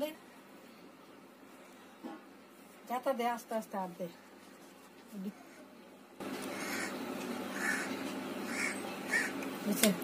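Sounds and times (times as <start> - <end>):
outdoor background hiss: 0.0 - 10.0
bird calling: 6.5 - 9.4.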